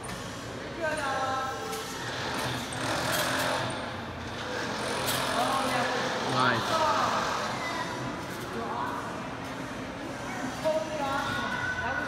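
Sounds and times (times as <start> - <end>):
low hum with hall echo: 0.0 - 12.0.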